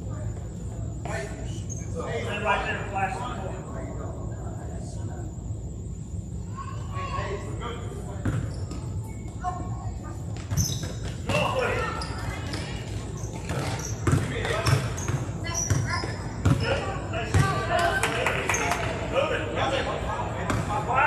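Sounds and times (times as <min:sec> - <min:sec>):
basketball bouncing on hard floor: 0:13.4 - 0:16.7, 0:17.3 - 0:17.6.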